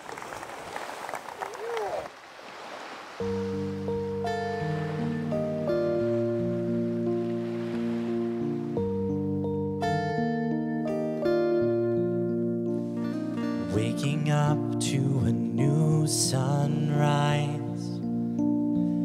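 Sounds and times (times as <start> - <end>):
acoustic band playing: 3.3 - 18.6
acoustic guitar: 3.3 - 19.0.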